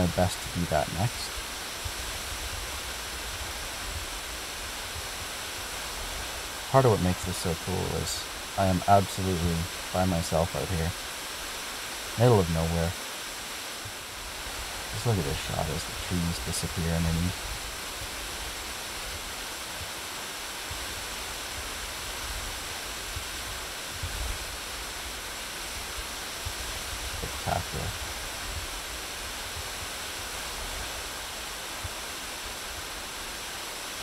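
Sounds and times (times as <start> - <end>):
waterfall rushing: 0.0 - 34.0.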